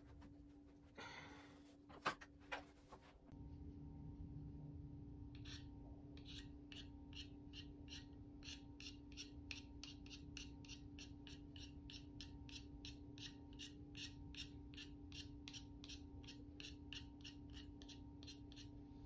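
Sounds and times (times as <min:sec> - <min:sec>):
blade scraping pastel stick: 0:05.4 - 0:12.6, 0:13.2 - 0:18.8.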